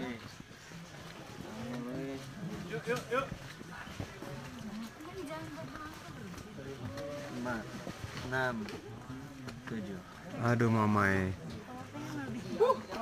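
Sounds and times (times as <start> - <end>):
indistinct chatter of voices: 0.0 - 13.0.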